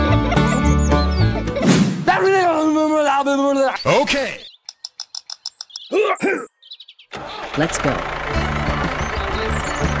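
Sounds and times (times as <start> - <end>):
high bird-like chirps: 3.7 - 7.4
high-pitched arching calls: 3.8 - 7.6.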